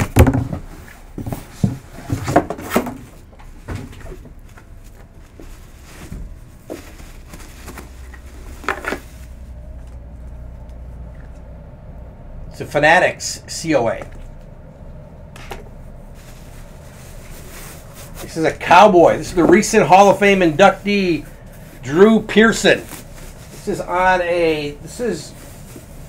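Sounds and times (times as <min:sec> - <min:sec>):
wooden crate knocks and scrapes: 0:00.0 - 0:04.4
soft bumps of bag handling: 0:03.0 - 0:11.4.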